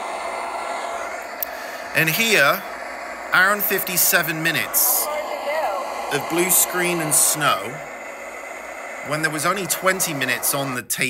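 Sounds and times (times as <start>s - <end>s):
video tape static hiss: 0.0s - 11.0s.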